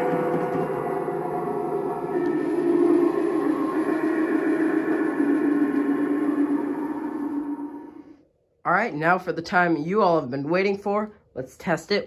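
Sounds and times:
low droning sound effect: 0.0 - 8.3.

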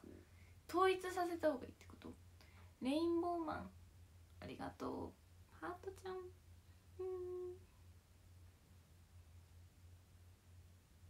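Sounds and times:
woman speaking: 0.7 - 2.2, 2.8 - 3.7, 4.4 - 6.4
woman humming: 7.0 - 7.7.

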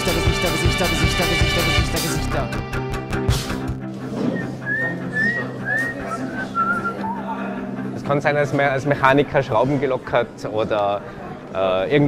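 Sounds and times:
whistled tune: 4.3 - 7.3.

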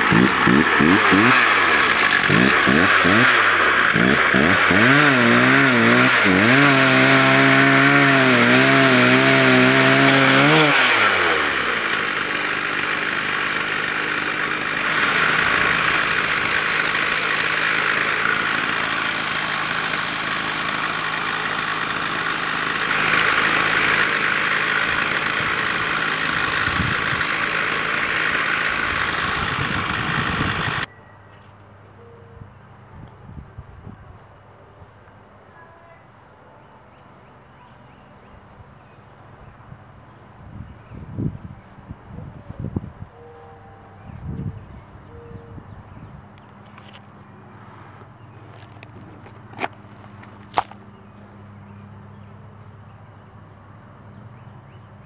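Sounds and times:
chainsaw engine running under load: 0.0 - 30.9, 46.3 - 52.7.

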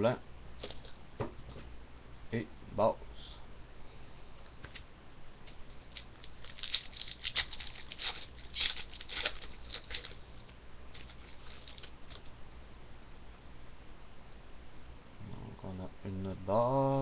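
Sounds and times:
foil wrapper crinkling and tearing: 5.9 - 12.3.

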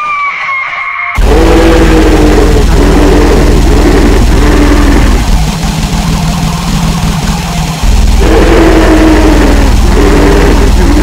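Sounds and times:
harsh squealing tones: 0.0 - 5.4, 7.8 - 11.0
distorted electronic noise: 0.5 - 11.0
low pulsing buzz: 1.2 - 11.0
rough low drone: 1.2 - 11.0.

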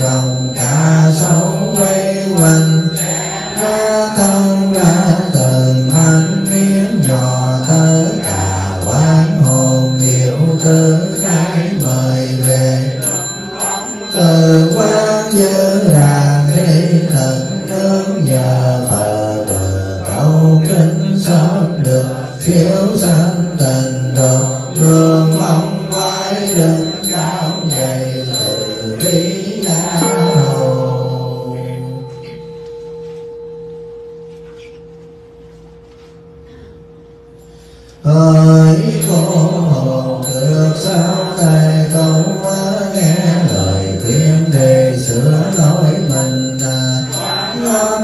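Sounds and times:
monks chanting in unison: 0.0 - 31.8, 38.1 - 48.0
bell ringing: 0.0 - 48.0.

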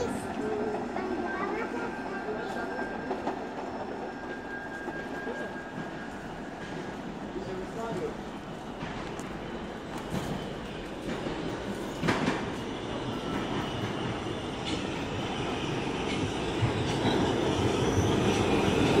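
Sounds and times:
subway train arriving: 0.0 - 19.0.

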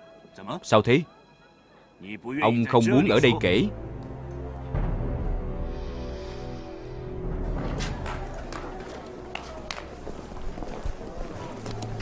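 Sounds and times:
footsteps: 7.4 - 12.0
murmur of voices: 7.8 - 12.0.

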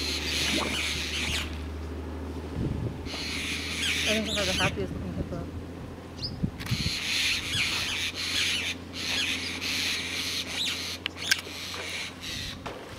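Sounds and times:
birds chirping and twittering: 0.0 - 2.3, 2.9 - 12.9
steady low hum: 0.0 - 12.9.

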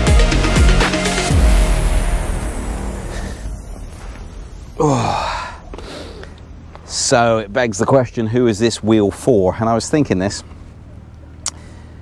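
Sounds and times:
electronic music: 0.0 - 6.6
man sighing: 4.7 - 6.4.

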